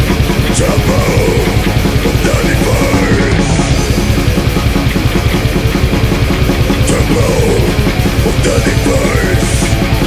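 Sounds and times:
death metal band playing: 0.0s - 10.0s.

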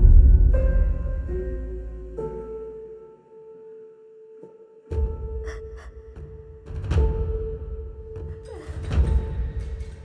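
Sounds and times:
deep low hit: 0.0s - 1.6s.

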